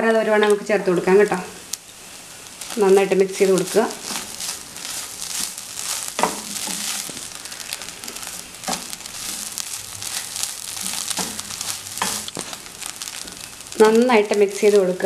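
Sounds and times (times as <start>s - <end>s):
light steady sizzle: 0.0s - 15.0s
spatula scraping frying pan: 1.9s - 15.0s.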